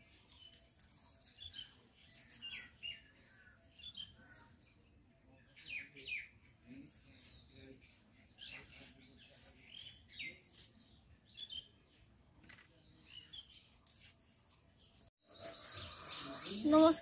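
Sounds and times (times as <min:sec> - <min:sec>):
small birds chirping: 0:00.0 - 0:17.0.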